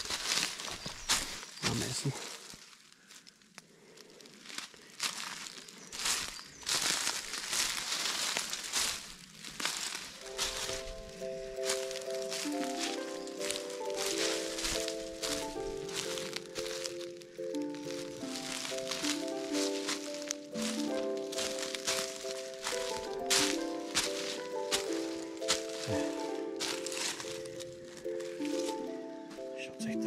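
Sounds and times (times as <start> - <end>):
footsteps on forest path: 0.0 - 30.0
calm background music: 9.8 - 30.0.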